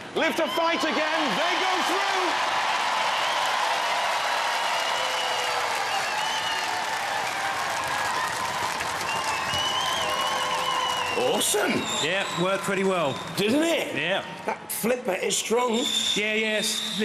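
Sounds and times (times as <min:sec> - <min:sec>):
audience applauding: 0:00.6 - 0:13.8.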